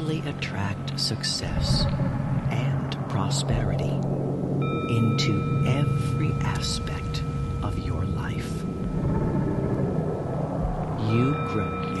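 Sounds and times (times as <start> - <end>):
person whispering: 0.0 - 1.9, 2.5 - 4.0, 4.9 - 8.6, 11.0 - 12.0
faint high tones: 0.0 - 12.0
steady low hum: 0.0 - 12.0.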